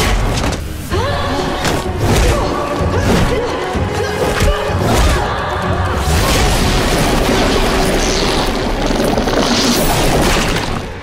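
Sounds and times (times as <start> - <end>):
action soundtrack music: 0.0 - 11.0.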